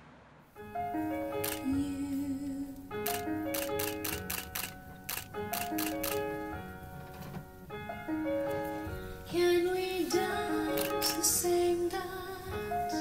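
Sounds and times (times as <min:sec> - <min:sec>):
song with held piano notes: 0:00.6 - 0:13.0
camera shutter clicking: 0:01.4 - 0:01.6, 0:03.0 - 0:06.3, 0:10.8 - 0:11.2.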